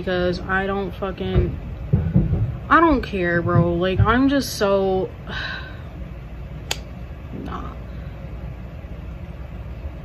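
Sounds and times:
sharp click: 0:06.7 - 0:06.9.

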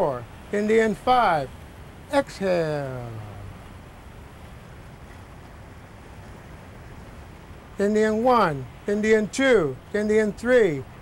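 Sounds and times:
faint ocean surf: 0:00.0 - 0:11.0.

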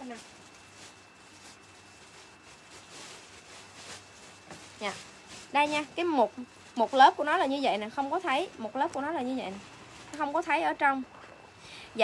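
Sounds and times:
fabric rustling and swishing: 0:00.0 - 0:08.4, 0:09.1 - 0:10.6.

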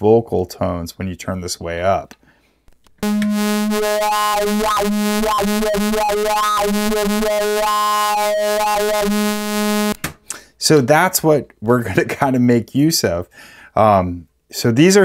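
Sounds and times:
synthesizer sequenced pattern: 0:03.0 - 0:10.0.

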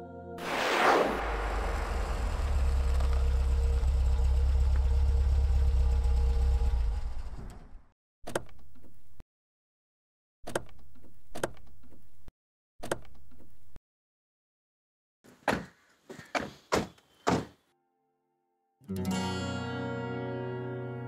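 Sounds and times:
quick whoosh: 0:00.4 - 0:02.7
car engine running: 0:01.2 - 0:07.9
car door clicks: 0:10.5 - 0:12.1, 0:12.8 - 0:13.5.

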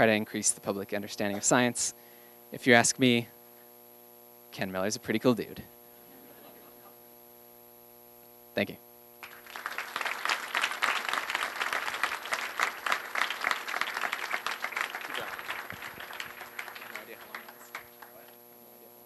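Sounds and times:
audience clapping: 0:09.2 - 0:18.4.

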